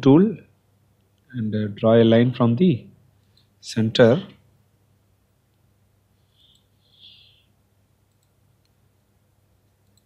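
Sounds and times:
low steady hum: 0.0s - 10.0s
faint mouse clicks: 6.4s - 7.2s, 8.0s - 8.8s, 9.6s - 10.0s.

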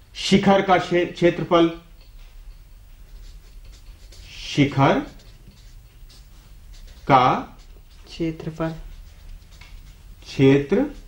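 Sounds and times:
marker pen writing on paper: 1.1s - 11.0s.

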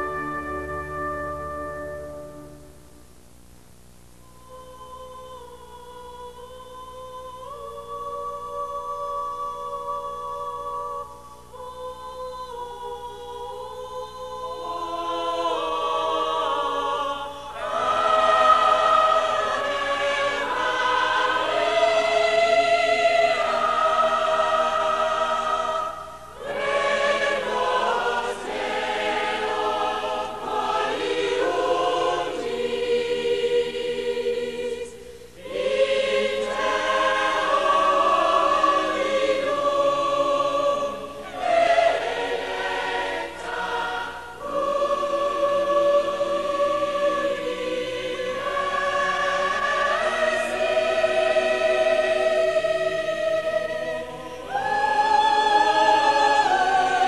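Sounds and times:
voices singing together: 4.3s - 57.0s.

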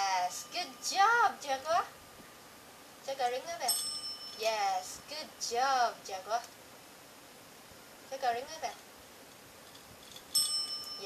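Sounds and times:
desk service bell ringing: 0.0s - 1.8s, 3.6s - 5.1s, 10.3s - 11.0s.

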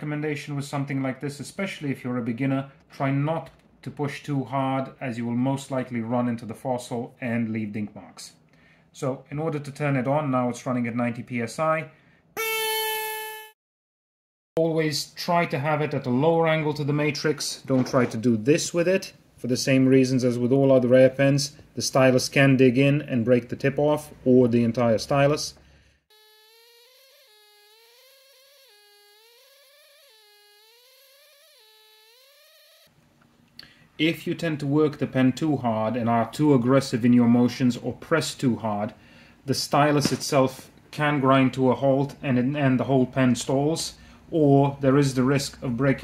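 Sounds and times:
air scribe high-pitched buzz: 26.1s - 32.9s.

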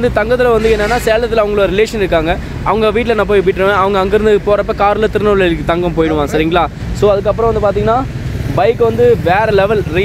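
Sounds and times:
voice with drawn-out pitch: 0.0s - 10.0s.

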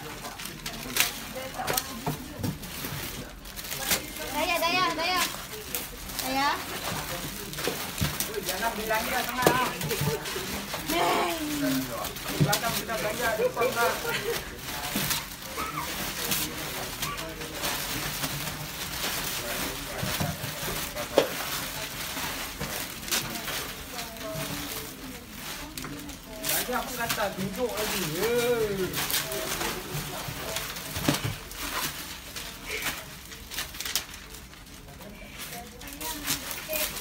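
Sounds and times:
plastic sack rustling: 0.0s - 37.0s.

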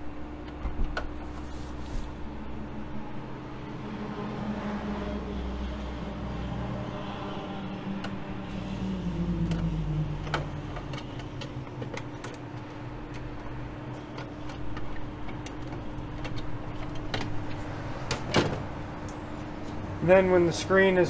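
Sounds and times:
low machine hum: 0.0s - 21.0s.

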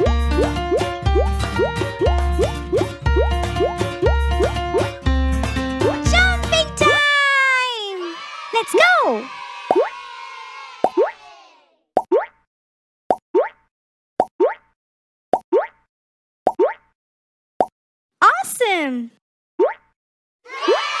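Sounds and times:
fidget toy bubbles popping: 12.0s - 12.4s, 16.5s - 16.9s.

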